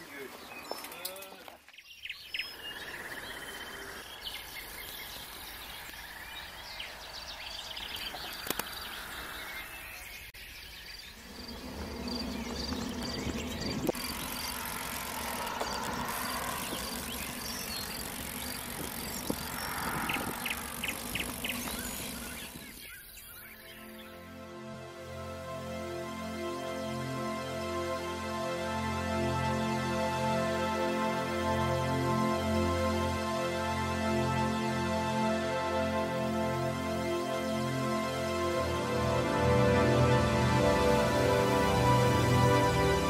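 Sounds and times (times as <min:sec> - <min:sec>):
bike tyres rolling: 0:11.2 - 0:22.9
wind noise: 0:11.3 - 0:22.6
faint high ticking: 0:11.4 - 0:22.8.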